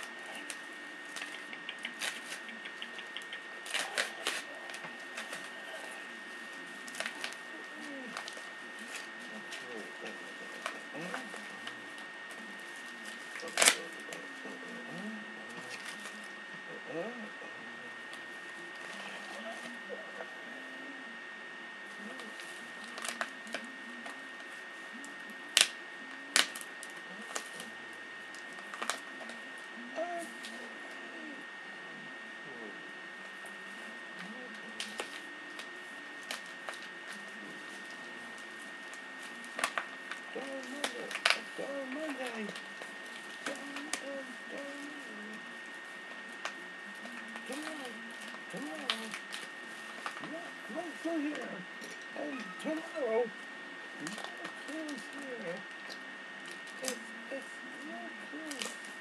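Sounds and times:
person murmuring: 0.0 - 18.0, 18.9 - 21.1, 29.3 - 31.4, 40.3 - 45.7, 46.9 - 49.3, 50.2 - 53.4, 54.0 - 55.7, 56.8 - 58.8
high-pitched whine: 0.0 - 59.0.

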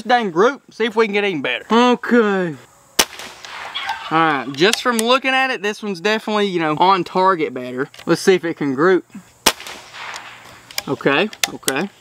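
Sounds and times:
air rifle shot crack: 3.0 - 4.1, 9.4 - 10.8.

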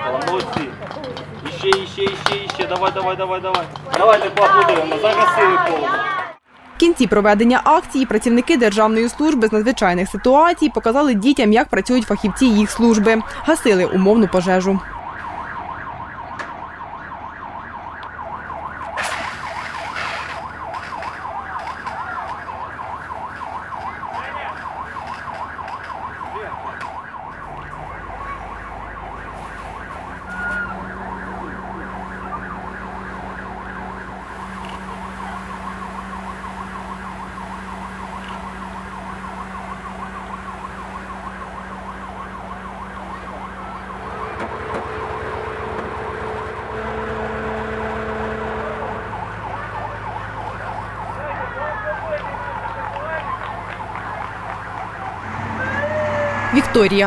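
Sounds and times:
fire engine siren warbling: 1.5 - 57.0.

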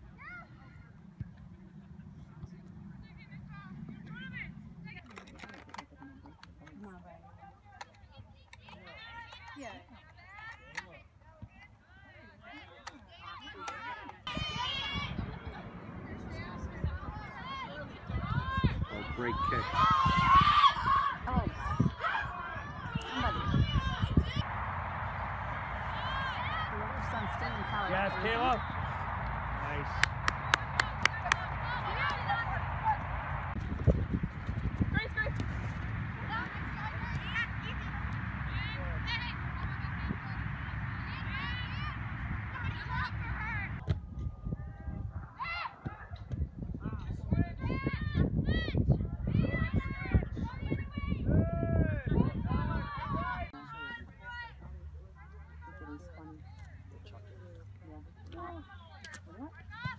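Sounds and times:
open-air noise: 0.0 - 59.9
voices shouting: 17.1 - 33.6
person clapping: 30.0 - 31.5.

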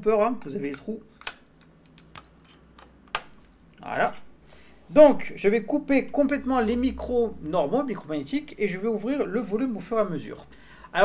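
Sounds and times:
plastic clicks and taps: 0.4 - 3.4.

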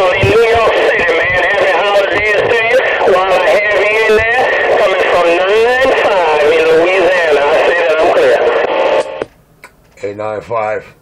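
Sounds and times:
man's voice over radio speaker: 0.0 - 9.2.

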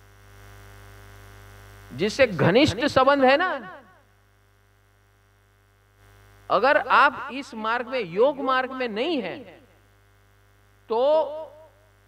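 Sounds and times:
faint mains hum: 0.0 - 12.0
man speaking: 1.9 - 3.7, 10.9 - 11.7.

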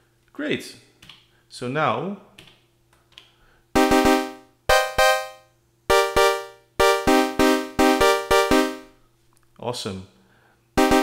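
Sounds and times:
buzzy synthesizer chord stabs: 3.8 - 9.0, 10.8 - 11.0.

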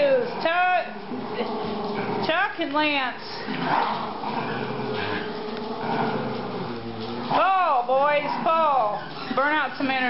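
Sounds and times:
small dogs growling and whining: 1.1 - 2.3, 3.4 - 9.4.

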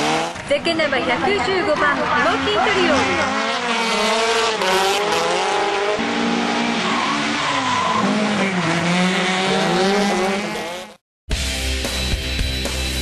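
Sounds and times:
car engines revving: 0.0 - 11.0.

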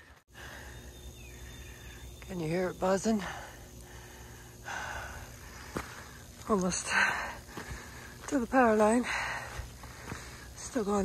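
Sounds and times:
power line buzzing: 0.0 - 11.0
person breathing: 3.2 - 6.3, 6.9 - 8.3, 9.0 - 10.6.

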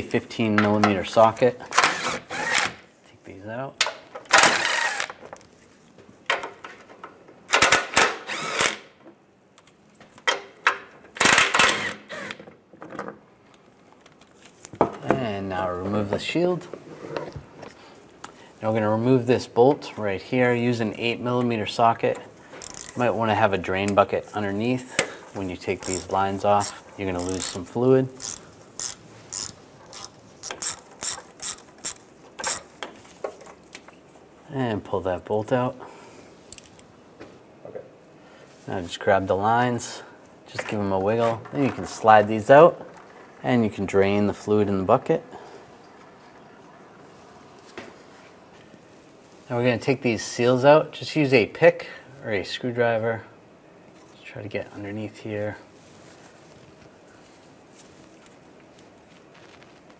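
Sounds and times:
cordless ratchet spinning bolts: 22.6 - 23.0, 25.8 - 32.7.

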